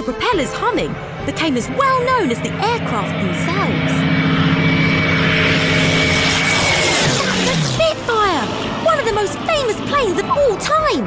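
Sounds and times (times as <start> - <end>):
background music: 0.0 - 11.0
propeller aircraft flying past: 0.0 - 11.0.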